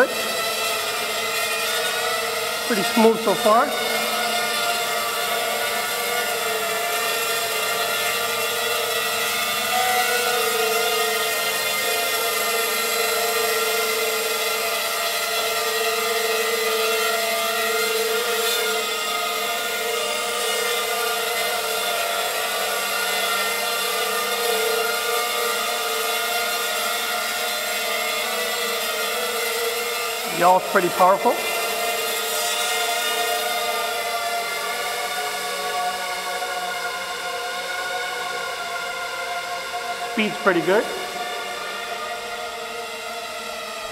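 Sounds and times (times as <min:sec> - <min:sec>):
quadcopter motors buzzing whine: 0:00.0 - 0:43.9.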